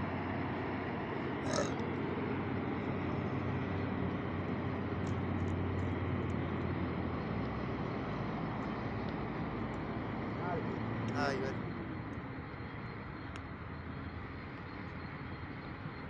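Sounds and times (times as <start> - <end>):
distant truck diesel engine drone: 0.0 - 16.0.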